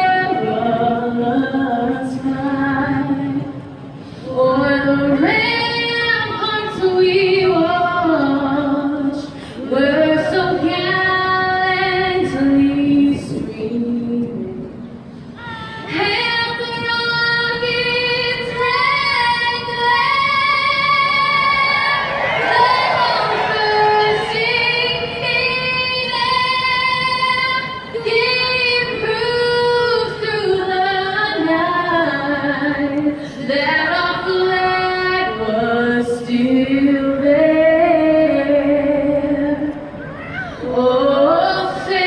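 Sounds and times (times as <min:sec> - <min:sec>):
woman singing into a microphone: 0:00.0 - 0:42.0.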